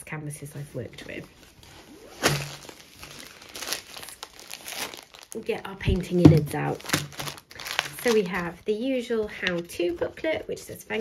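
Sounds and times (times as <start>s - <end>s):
plastic packaging crinkling: 1.3s - 11.0s.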